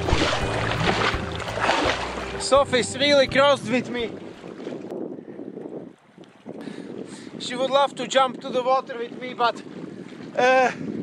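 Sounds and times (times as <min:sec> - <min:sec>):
sea water lapping among rocks: 0:00.0 - 0:02.4, 0:04.1 - 0:07.4, 0:08.9 - 0:10.5
wind noise on microphone: 0:00.0 - 0:11.0.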